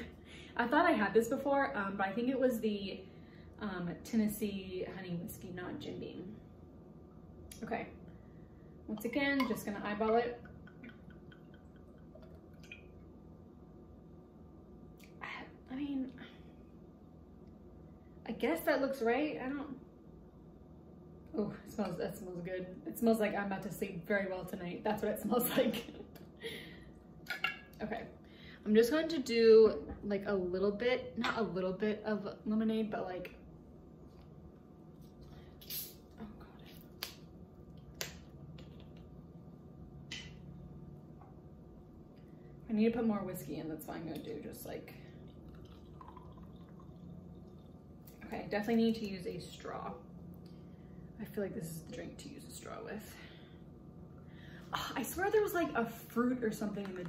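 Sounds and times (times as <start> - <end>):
liquid glugging and dripping: 9.0 - 13.1, 44.1 - 49.2.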